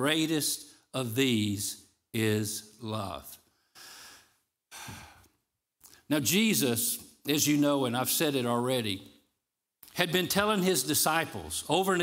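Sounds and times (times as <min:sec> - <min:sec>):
man breathing into microphone: 0:03.6 - 0:05.3.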